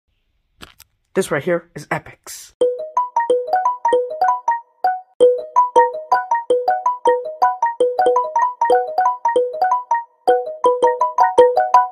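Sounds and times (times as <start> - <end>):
bouncy electronic keyboard melody: 2.6 - 11.9.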